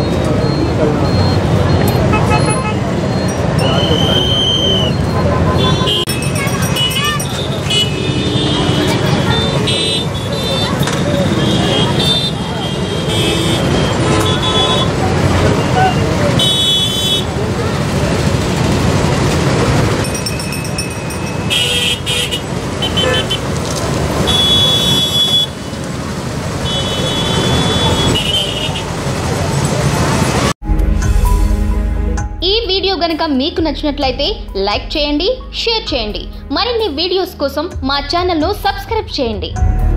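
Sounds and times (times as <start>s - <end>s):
vehicle engines rumbling: 0.0s - 30.6s
car horn toots: 1.8s - 3.0s, 3.6s - 17.4s, 21.0s - 23.5s, 24.2s - 25.7s, 26.6s - 29.0s.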